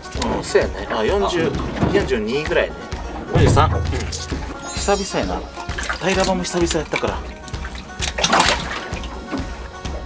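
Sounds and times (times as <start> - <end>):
fish splashing in water: 6.6 - 9.3.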